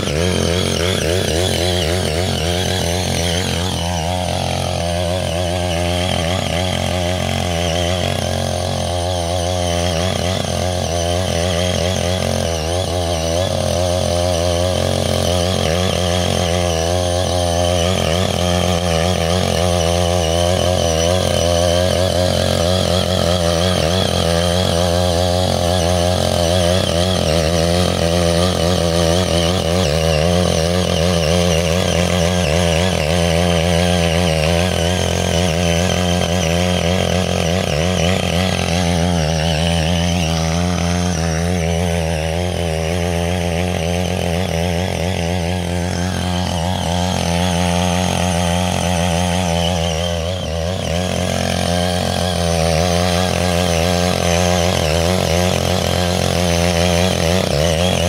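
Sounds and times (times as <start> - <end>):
small petrol engine running: 0.0 - 58.0
tines churning soil: 0.0 - 58.0.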